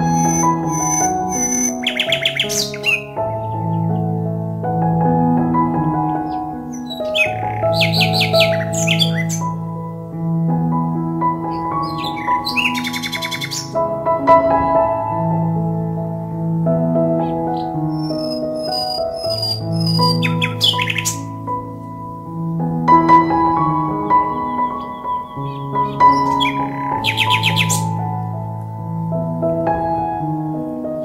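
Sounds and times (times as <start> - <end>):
songbird chirping and trilling: 0.0 - 10.2, 11.2 - 14.4, 17.0 - 29.0
calm instrumental music: 0.0 - 31.0.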